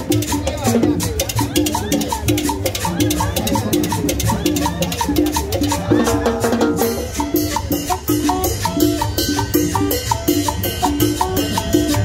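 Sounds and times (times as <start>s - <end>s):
congas and timbales rhythm: 0.0s - 12.0s
saxophone line: 1.8s - 12.0s.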